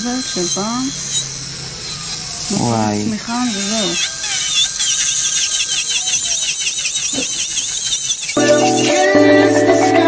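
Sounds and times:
electric nail drill whining: 0.0s - 10.0s.

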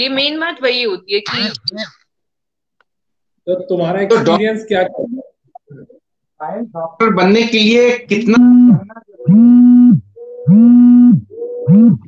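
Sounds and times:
robotic distorted voice tones: 1.2s - 1.9s, 4.1s - 6.0s, 6.7s - 12.0s.

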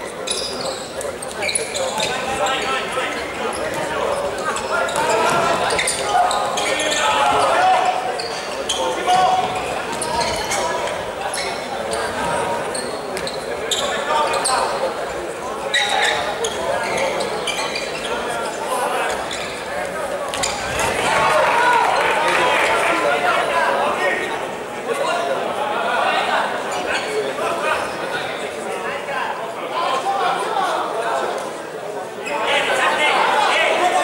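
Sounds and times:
players calling out: 0.0s - 24.6s
crowd chatter: 0.0s - 34.0s.

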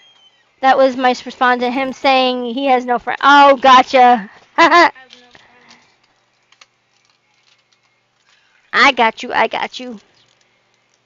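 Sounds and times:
person speaking: 0.6s - 5.8s.

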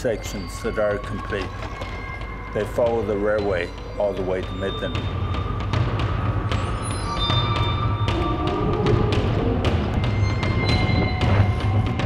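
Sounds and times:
percussion hits: 0.0s - 12.0s
background music with bass line: 2.2s - 12.0s.

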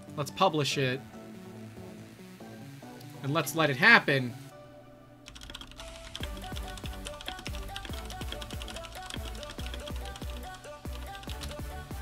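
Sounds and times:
electronic music with falling notes: 0.0s - 12.0s.

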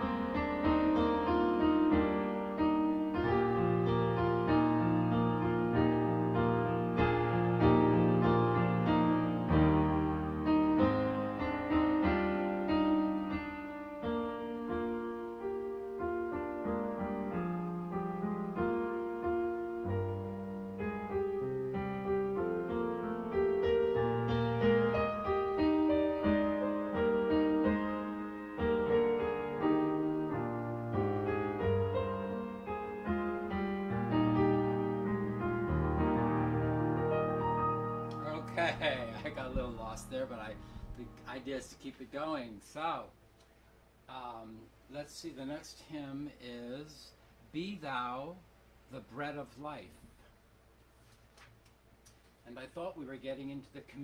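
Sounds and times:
electronic keyboard playing hymn: 0.0s - 41.8s.

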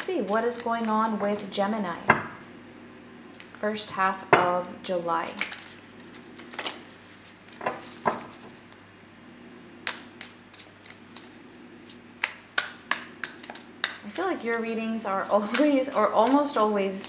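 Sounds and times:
cards being shuffled: 0.0s - 1.7s, 5.3s - 9.1s, 9.8s - 17.0s
faint steady hum: 0.0s - 17.0s.

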